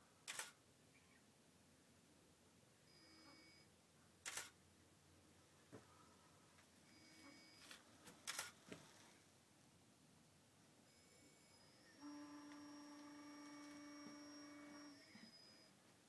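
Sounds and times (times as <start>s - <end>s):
camera shutter clicks: 0.3s - 0.6s, 4.2s - 4.6s, 7.7s - 8.6s.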